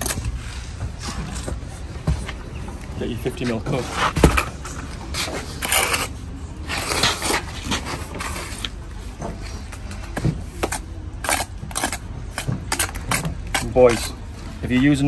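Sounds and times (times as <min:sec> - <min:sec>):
trowel scraping mortar: 0:05.2 - 0:08.7, 0:10.6 - 0:14.2.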